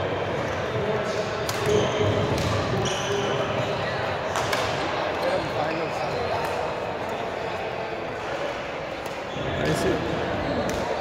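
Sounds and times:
chatter of voices in gym hall: 0.0 - 11.0.

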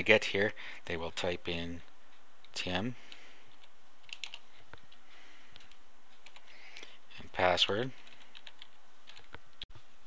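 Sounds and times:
background hiss: 0.0 - 10.0
computer keyboard keystrokes: 3.5 - 6.5, 8.0 - 9.4.

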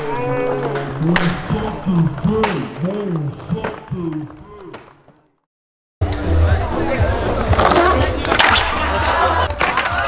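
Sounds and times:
crowd voices: 6.0 - 10.0
skateboard wheels rolling on concrete: 6.0 - 10.0.

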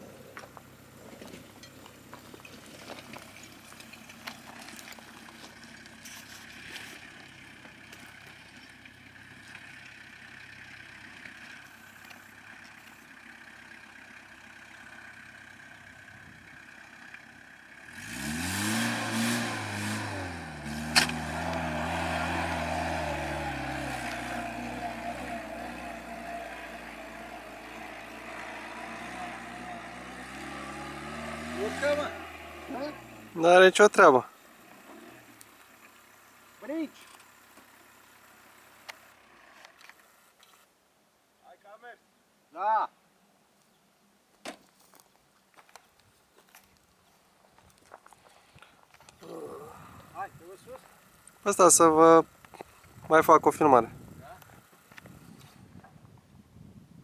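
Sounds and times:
off-road vehicle engine revving: 2.1 - 40.2.

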